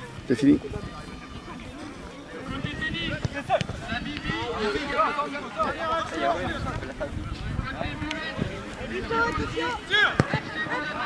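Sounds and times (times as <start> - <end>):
voices shouting across pitch: 0.7 - 11.0.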